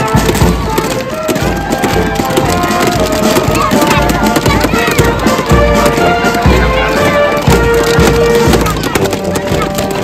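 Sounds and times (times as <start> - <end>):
brass band playing held notes: 0.0 - 10.0
sharp drum beats: 0.0 - 10.0.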